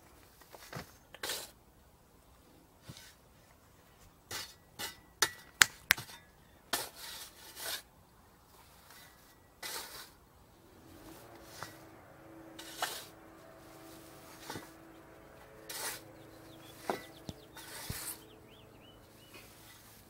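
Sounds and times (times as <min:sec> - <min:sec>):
shovel scraping dirt: 0:08.9 - 0:10.2, 0:12.6 - 0:13.1, 0:15.7 - 0:18.6.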